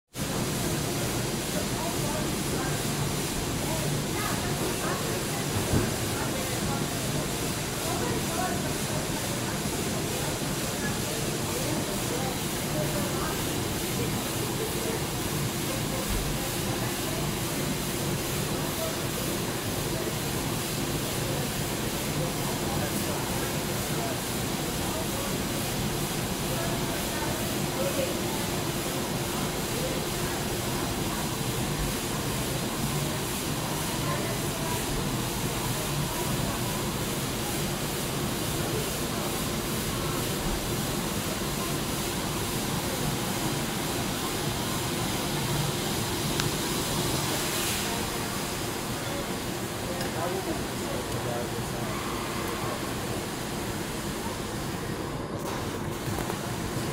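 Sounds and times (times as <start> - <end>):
coffee brewer hissing: 0.2 - 54.9.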